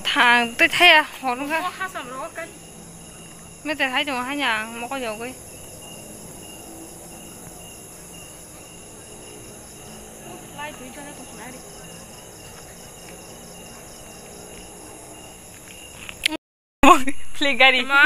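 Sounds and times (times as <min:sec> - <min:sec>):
insects and crickets trilling: 0:00.0 - 0:16.4.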